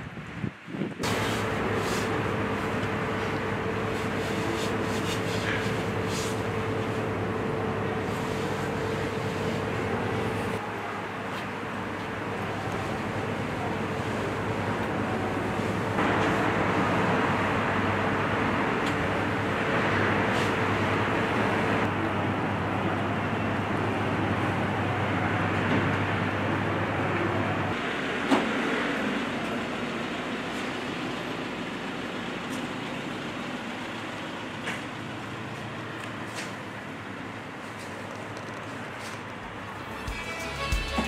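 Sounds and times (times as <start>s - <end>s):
outdoor traffic noise: 0.0s - 41.0s.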